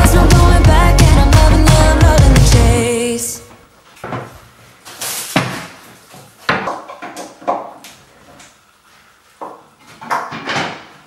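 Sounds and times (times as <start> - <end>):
background music: 0.0 - 3.4.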